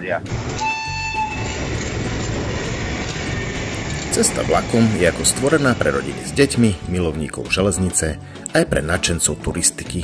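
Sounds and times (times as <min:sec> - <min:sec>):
train rumbling on tracks: 0:00.3 - 0:07.4
train horn: 0:00.4 - 0:02.0.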